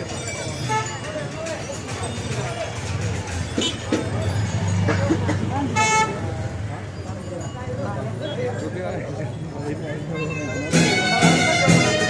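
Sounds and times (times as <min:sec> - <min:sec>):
crowd chatter: 0:00.0 - 0:12.0.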